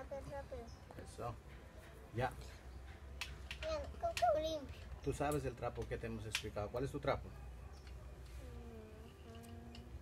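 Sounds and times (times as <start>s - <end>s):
small clicks of handled parts: 3.2s - 6.5s.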